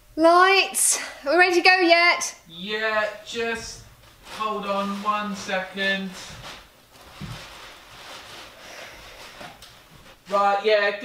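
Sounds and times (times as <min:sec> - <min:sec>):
faint rustling of person moving: 0:02.9 - 0:10.7.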